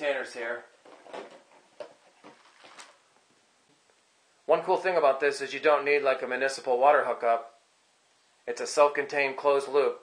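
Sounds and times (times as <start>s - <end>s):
plastic bottle and tubing rustling: 0.7s - 3.3s.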